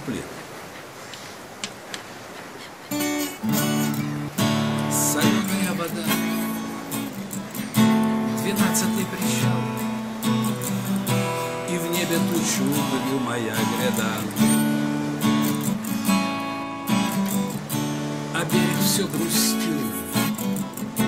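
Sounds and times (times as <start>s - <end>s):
acoustic guitar strumming chords: 2.9s - 21.0s.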